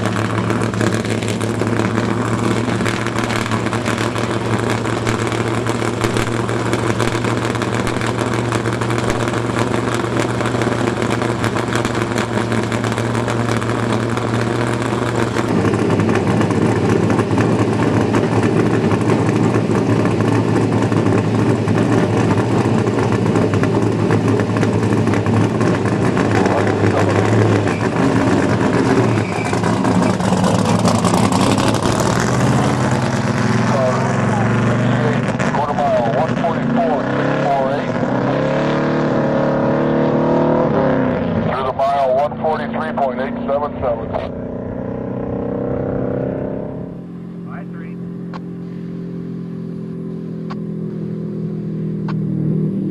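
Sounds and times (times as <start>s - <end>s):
loud v eight engine running: 0.0s - 52.9s.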